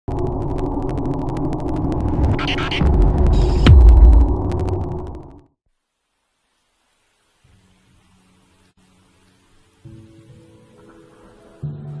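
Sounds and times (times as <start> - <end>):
crackling low drone: 0.0 - 5.5
deep boom with sharp hit: 2.8 - 5.2.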